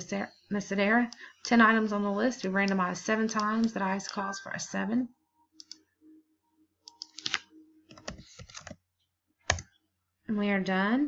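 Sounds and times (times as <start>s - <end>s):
computer mouse clicks: 2.6s - 4.2s, 5.6s - 5.8s, 6.8s - 8.8s, 9.5s - 9.8s.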